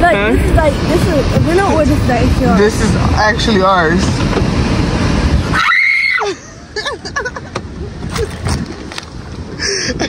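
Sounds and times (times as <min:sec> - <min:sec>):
loud rushing noise: 0:00.0 - 0:05.7
girl screaming: 0:05.5 - 0:06.4.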